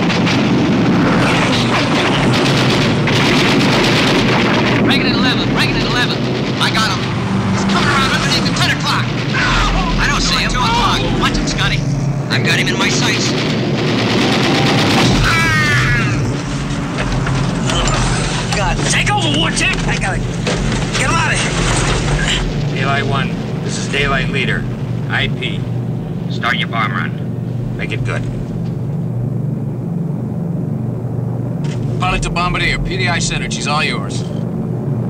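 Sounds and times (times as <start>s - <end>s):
low engine drone: 0.0s - 35.0s
indistinct voices: 4.7s - 28.5s.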